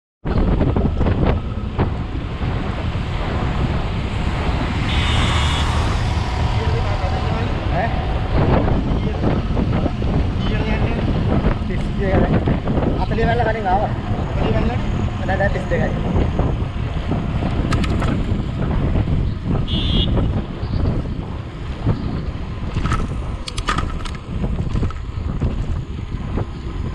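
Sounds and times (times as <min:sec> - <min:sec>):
wind buffeting microphone: 0:00.2 - 0:26.9.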